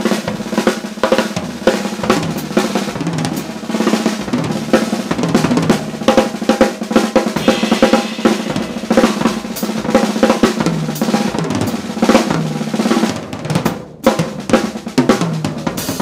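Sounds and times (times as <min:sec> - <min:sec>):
drum kit played fast: 0:00.0 - 0:16.0
steady low instrument notes: 0:07.4 - 0:10.0.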